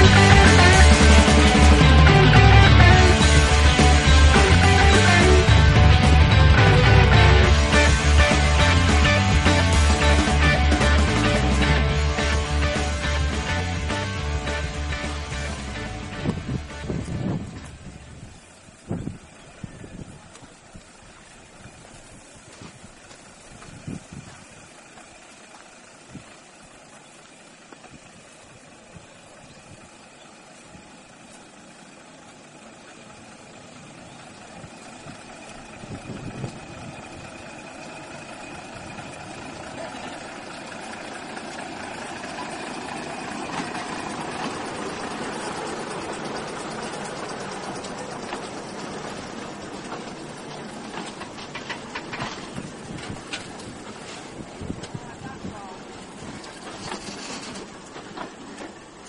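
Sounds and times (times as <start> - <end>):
diesel railcar passing: 0.0 - 59.0.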